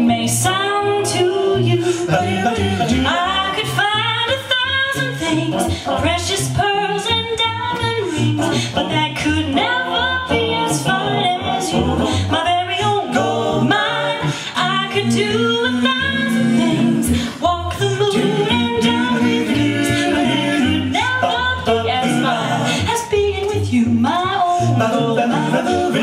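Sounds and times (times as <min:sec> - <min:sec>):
a cappella vocal harmony: 0:00.0 - 0:26.0.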